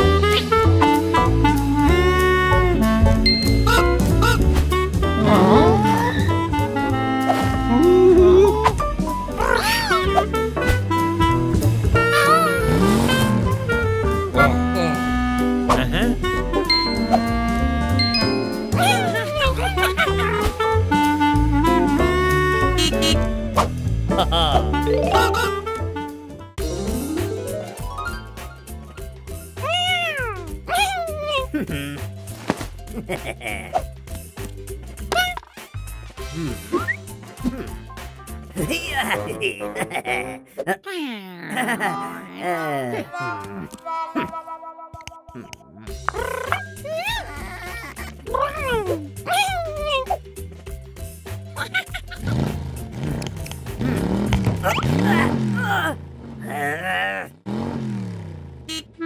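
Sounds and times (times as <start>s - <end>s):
cartoon background music: 0.0s - 57.3s, 58.6s - 59.0s
cartoon character vocal sounds: 5.2s - 6.3s, 9.4s - 10.2s, 18.7s - 20.5s, 24.2s - 25.8s, 29.6s - 32.0s, 38.7s - 44.4s, 45.1s - 50.2s, 53.8s - 57.3s
music notes: 10.2s - 23.4s, 24.5s - 28.9s
wordless vocal calls: 35.0s - 37.1s, 45.0s - 50.2s
cartoon toy car engine revving: 52.1s - 56.5s.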